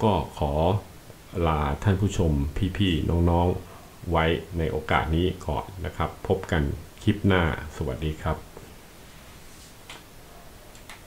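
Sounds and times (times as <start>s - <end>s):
low steady hiss: 0.0s - 11.0s
faint clicks: 10.7s - 11.0s.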